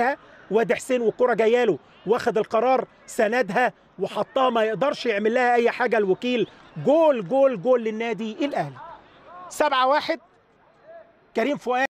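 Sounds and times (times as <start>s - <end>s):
faint background noise: 0.0s - 11.9s
male commentator speaking: 0.0s - 11.9s.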